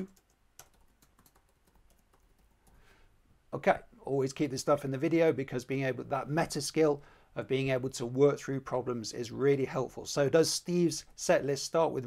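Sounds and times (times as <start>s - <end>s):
computer keyboard typing: 0.0s - 2.8s.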